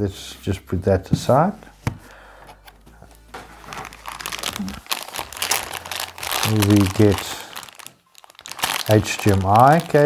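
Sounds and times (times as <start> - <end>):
plastic bag crinkling: 3.4 - 10.0.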